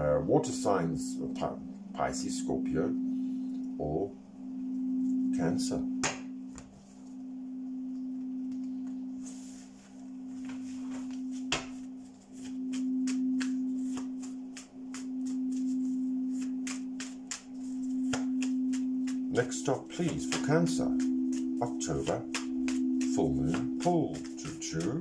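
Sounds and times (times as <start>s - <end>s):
singing bowl drone: 0.0s - 25.0s
cards being shuffled: 10.4s - 25.0s.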